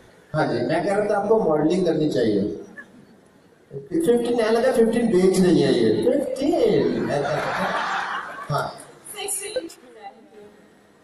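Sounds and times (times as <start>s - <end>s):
audience laughing: 6.7s - 9.7s.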